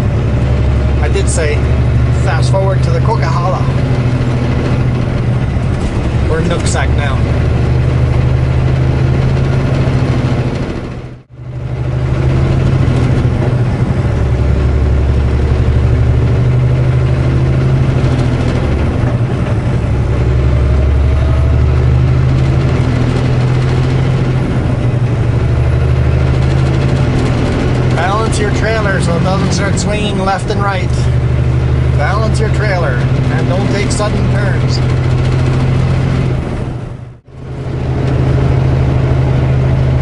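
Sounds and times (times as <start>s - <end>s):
diesel truck engine drone: 0.0s - 40.0s
road noise: 0.0s - 40.0s.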